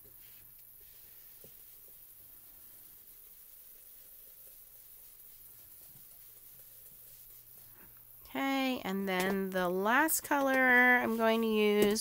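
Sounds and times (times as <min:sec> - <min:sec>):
sponge scrubbing on paper: 0:00.2 - 0:07.8, 0:10.4 - 0:12.0.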